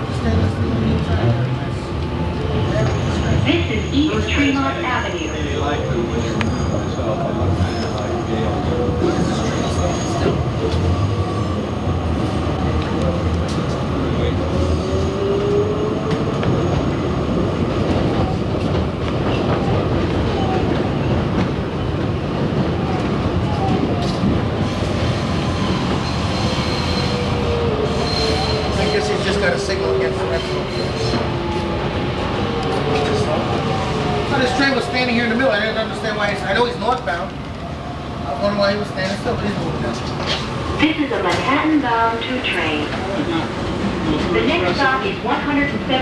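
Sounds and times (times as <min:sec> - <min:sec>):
subway train rumbling on track: 0:00.0 - 0:46.0
train whine: 0:00.0 - 0:46.0.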